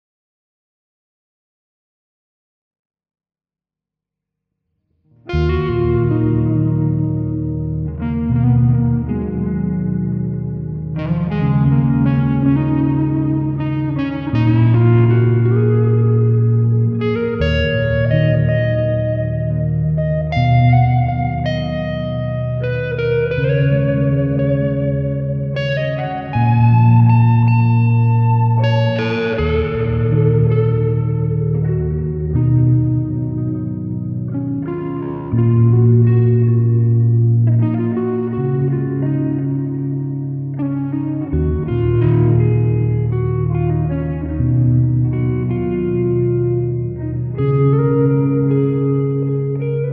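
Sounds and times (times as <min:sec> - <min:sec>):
electric guitar chords: 0:05.1 - 0:49.9
low sustained bass: 0:05.2 - 0:49.9.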